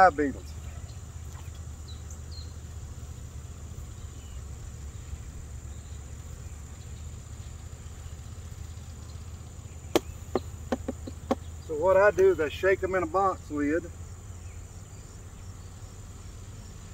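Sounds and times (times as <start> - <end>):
high insect trill: 0.0 - 16.9
sharp knock: 9.9 - 11.4.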